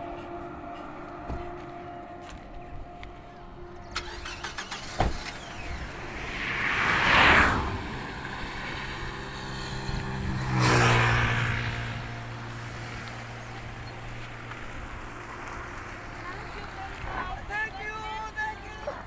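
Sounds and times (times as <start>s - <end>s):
low engine hum: 0.0s - 19.0s
vehicles passing: 0.0s - 19.0s
car door shutting: 4.0s - 5.8s.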